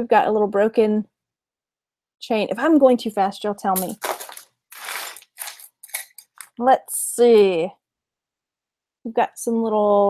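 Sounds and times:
packaging rustling and crinkling: 0:03.8 - 0:06.6.

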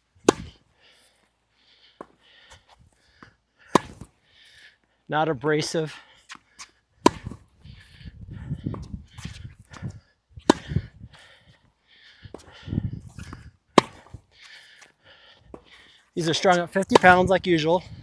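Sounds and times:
racket striking tennis ball: 0:00.2 - 0:00.6, 0:03.7 - 0:04.1, 0:07.0 - 0:07.4, 0:10.4 - 0:10.9, 0:13.2 - 0:14.2, 0:16.4 - 0:17.3
tennis ball bouncing: 0:00.2 - 0:00.6, 0:03.7 - 0:04.1, 0:07.0 - 0:07.4, 0:10.4 - 0:10.9, 0:13.2 - 0:14.1, 0:16.5 - 0:17.2
shoes shuffling on court: 0:05.5 - 0:08.0, 0:08.6 - 0:11.7, 0:12.3 - 0:18.0.

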